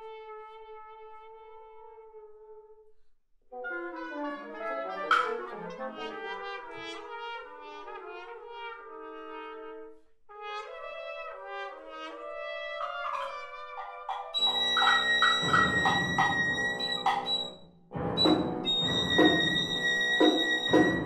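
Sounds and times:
chamber ensemble with brass: 0:00.0 - 0:02.8, 0:03.5 - 0:21.0.

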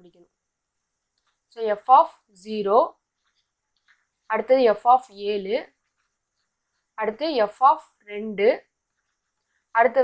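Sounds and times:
person speaking: 0:01.2 - 0:10.0.

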